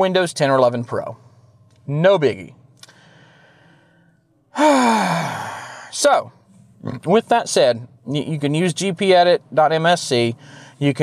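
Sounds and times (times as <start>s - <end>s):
man breathing faintly: 2.8s - 5.9s, 10.4s - 10.8s
man sighing: 4.5s - 5.9s.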